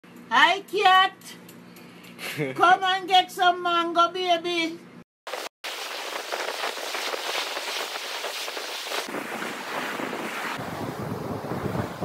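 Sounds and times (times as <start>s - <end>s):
surf washing onto beach: 5.3s - 12.0s
low wind rumble: 5.8s - 12.0s
wind buffeting microphone: 5.9s - 12.0s.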